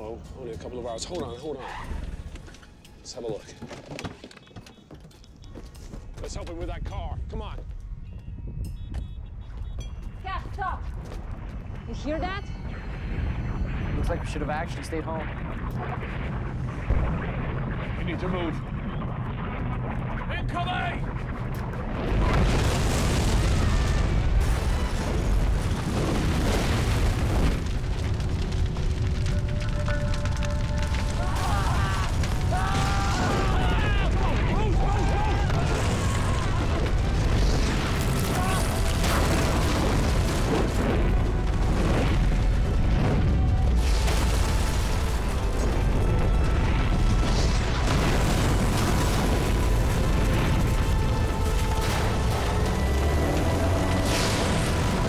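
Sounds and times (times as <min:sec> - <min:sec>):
continuous low rumble: 0:10.8 - 0:55.0
booming explosions: 0:11.2 - 0:55.0.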